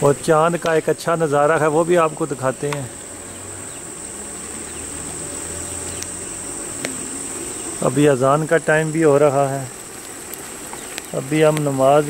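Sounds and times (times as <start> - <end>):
crickets chirring: 0.0 - 12.0
faint clicks: 5.9 - 6.2, 10.0 - 11.7.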